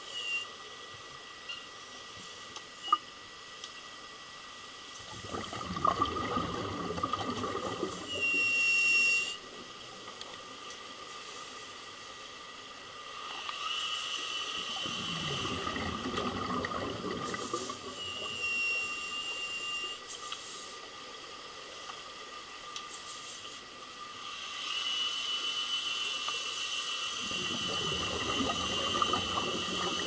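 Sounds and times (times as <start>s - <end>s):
thin high whistle: 0.0s - 0.6s, 8.0s - 9.5s, 17.6s - 20.4s, 24.5s - 28.0s
crackling exhaust bubbles underwater: 2.0s - 24.5s, 27.1s - 30.0s.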